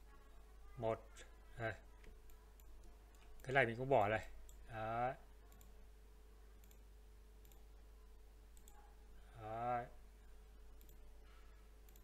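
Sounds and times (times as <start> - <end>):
faint steady hum: 0.0 - 12.0
computer mouse clicks: 2.0 - 3.6, 5.5 - 5.8, 6.6 - 7.7, 8.5 - 8.8, 10.8 - 11.1.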